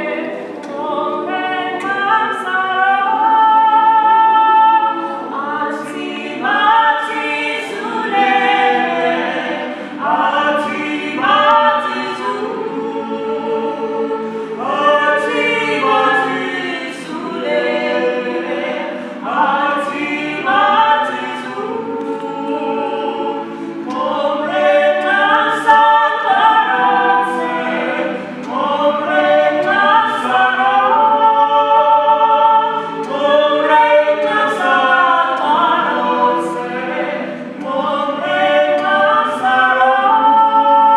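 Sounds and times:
mixed choir singing in harmony: 0:00.0 - 0:40.9.

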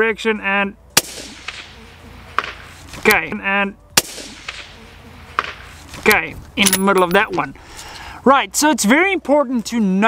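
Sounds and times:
bullet striking steel target: 0:06.6 - 0:07.4.

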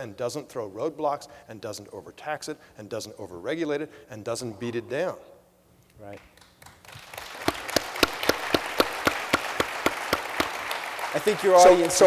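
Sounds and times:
close hand clapping: 0:06.1 - 0:12.0
audience applause: 0:06.6 - 0:12.0.

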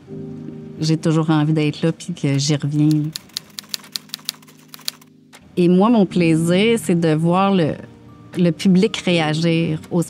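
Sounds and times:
typewriter key clicks: 0:02.8 - 0:05.1.

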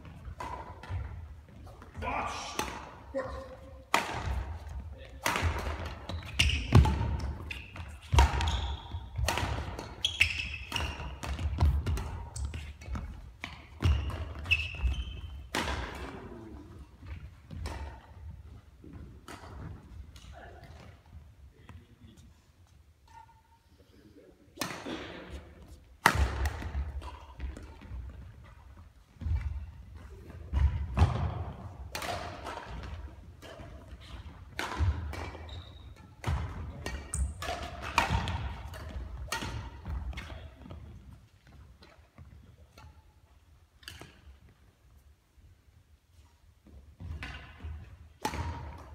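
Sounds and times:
racket striking shuttlecock: 0:00.0 - 0:01.6, 0:03.8 - 0:16.2, 0:17.1 - 0:18.3, 0:18.9 - 0:20.9, 0:23.0 - 0:23.5, 0:26.0 - 0:28.6, 0:30.3 - 0:40.9, 0:43.7 - 0:44.5, 0:46.6 - 0:48.9
shoes squeaking on court floor: 0:05.9 - 0:15.6, 0:34.0 - 0:44.4.

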